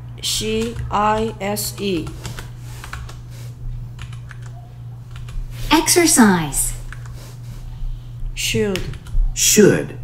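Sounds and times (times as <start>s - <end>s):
steady low hum: 0.0s - 10.0s
computer keyboard keys clicking: 0.4s - 3.2s, 4.0s - 5.4s, 6.9s - 7.2s, 8.7s - 9.2s.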